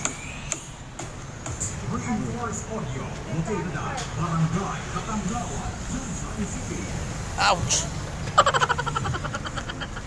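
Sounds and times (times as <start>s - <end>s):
low street background: 0.0s - 10.0s.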